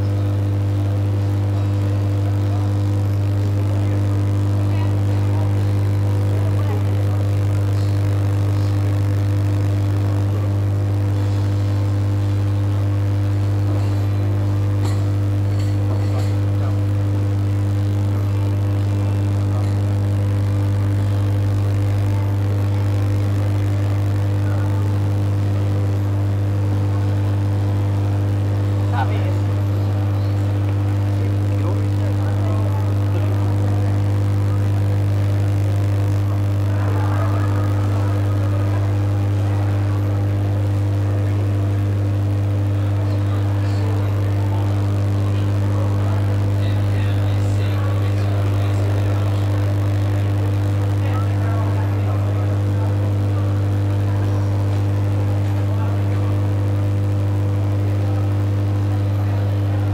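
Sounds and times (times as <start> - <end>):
loud steady low hum: 0.0 - 59.9
people chattering: 0.0 - 59.9.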